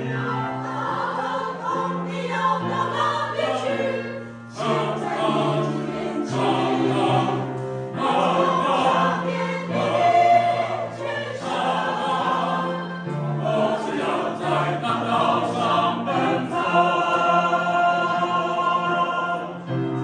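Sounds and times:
mixed choir singing: 0:00.0 - 0:20.0.

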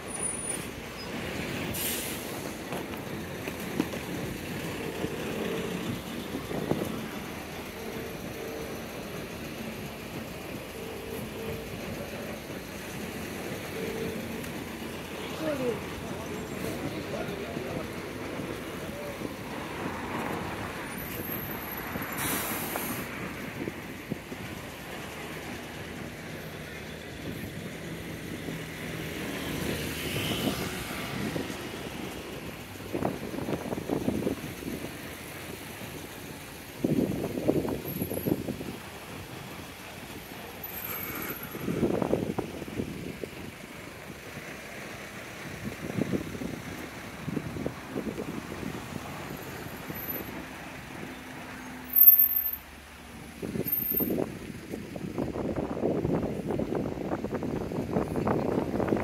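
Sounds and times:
bus air brakes hissing: 0:00.0 - 0:02.8, 0:21.4 - 0:23.7, 0:40.5 - 0:42.1
road traffic passing: 0:00.0 - 0:59.0
voices of passers-by: 0:00.0 - 0:59.0.

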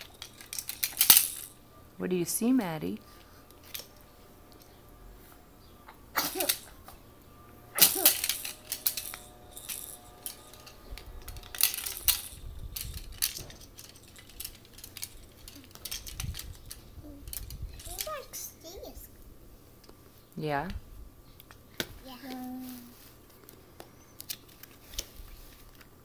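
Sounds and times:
puzzle pieces clattering: 0:00.0 - 0:01.6, 0:06.2 - 0:06.8, 0:07.8 - 0:16.8.

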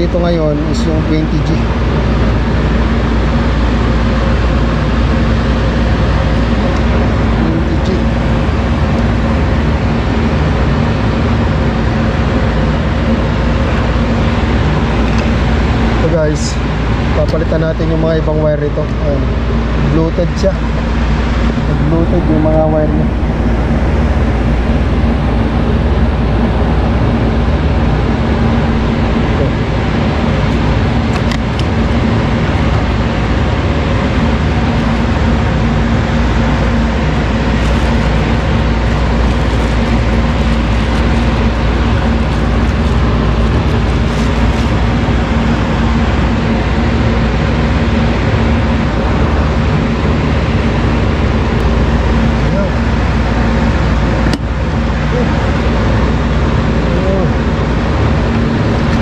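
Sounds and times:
machinery rumble and hum: 0:00.0 - 0:59.0.

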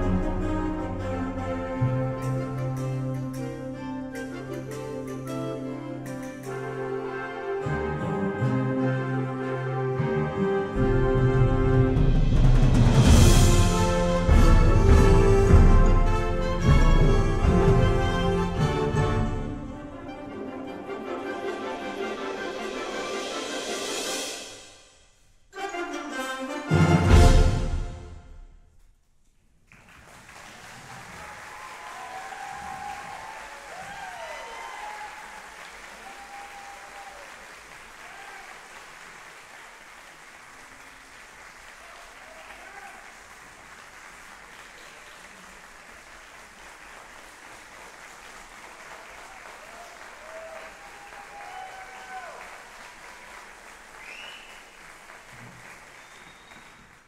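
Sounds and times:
audience applauding: 0:29.6 - 0:57.0
people whooping and cheering: 0:30.6 - 0:38.8, 0:41.8 - 0:43.2, 0:48.9 - 0:53.2.

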